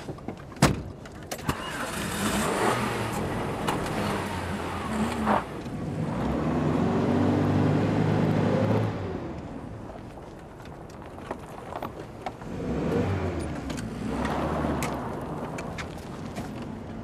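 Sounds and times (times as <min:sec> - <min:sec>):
car engine starting and revving: 0:01.4 - 0:09.7, 0:12.4 - 0:17.0.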